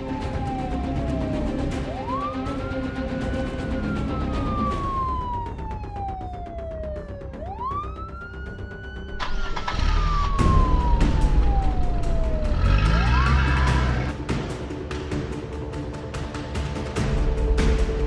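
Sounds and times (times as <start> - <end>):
siren wailing: 0.0 - 14.2.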